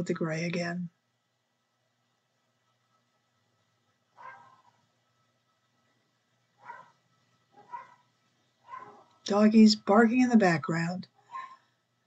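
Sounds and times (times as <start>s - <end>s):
dog barking faintly: 4.1s - 4.9s, 6.6s - 9.2s, 11.2s - 11.7s.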